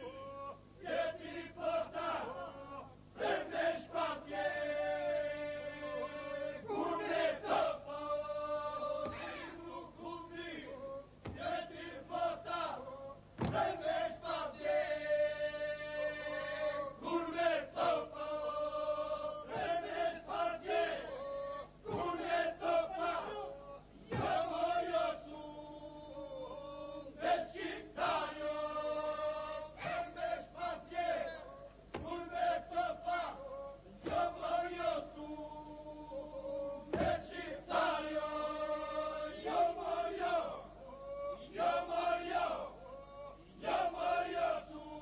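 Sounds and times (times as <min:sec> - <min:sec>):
lead voices singing: 0:00.0 - 0:45.0
men singing a held drone: 0:00.0 - 0:45.0.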